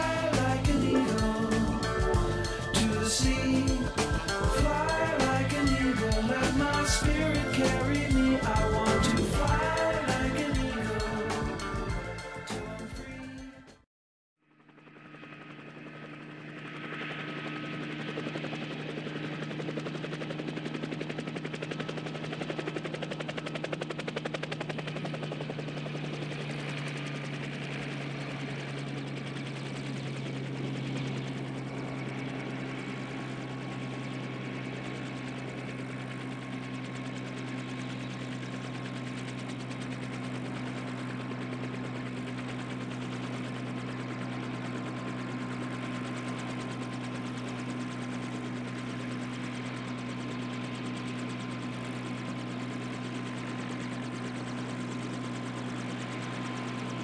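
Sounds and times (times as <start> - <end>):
drone propellers buzzing: 0.0 - 13.1.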